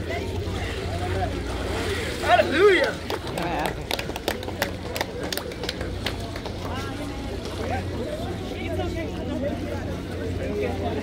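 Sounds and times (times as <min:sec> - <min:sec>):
people speaking: 0:00.0 - 0:11.0.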